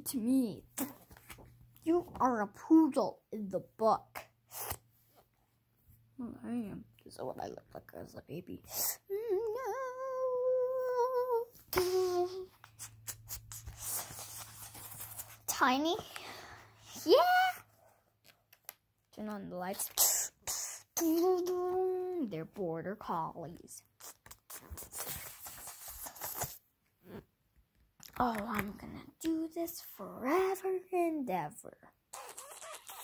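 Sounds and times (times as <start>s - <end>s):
rustling and rubbing of handling: 12.3s - 17.1s
phone brushing against clothing: 12.5s - 16.0s, 24.0s - 26.6s.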